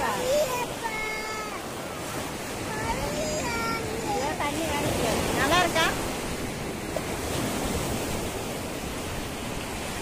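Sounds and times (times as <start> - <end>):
small waves washing onto sand: 0.0 - 10.0.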